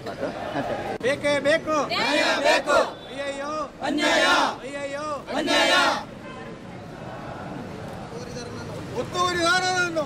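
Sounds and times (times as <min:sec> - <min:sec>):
protesters chanting in unison: 0:01.9 - 0:03.0, 0:03.8 - 0:06.2.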